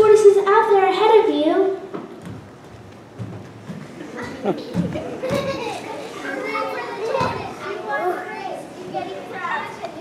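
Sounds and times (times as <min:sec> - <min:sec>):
children chattering and calling: 0:03.8 - 0:10.0.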